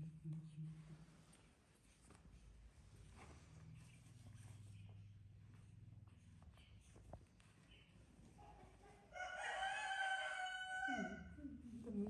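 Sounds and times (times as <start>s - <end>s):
rooster crowing: 9.1s - 11.4s.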